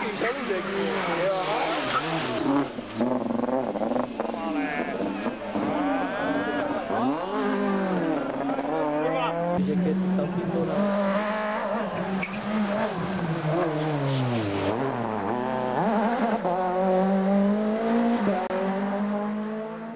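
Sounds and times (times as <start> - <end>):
rally car engines revving: 0.0 - 19.9.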